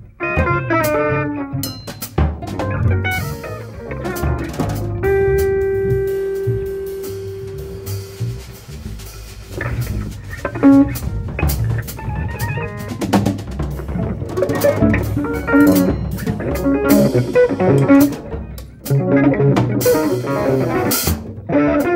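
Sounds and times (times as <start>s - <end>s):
drum kit: 0.0s - 21.9s
electric guitar: 0.0s - 21.9s
upright double bass: 0.0s - 21.9s.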